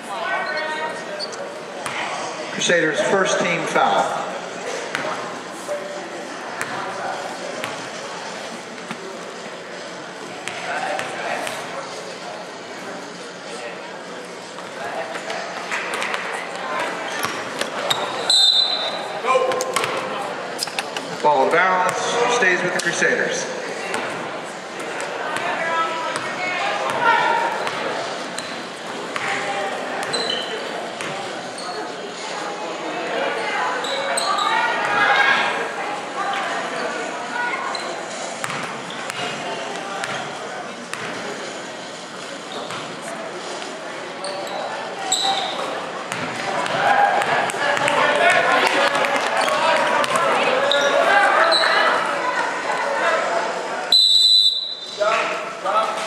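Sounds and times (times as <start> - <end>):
voices chattering and calling out: 0.0 - 56.0
referee's whistle: 18.0 - 19.1, 53.9 - 55.0.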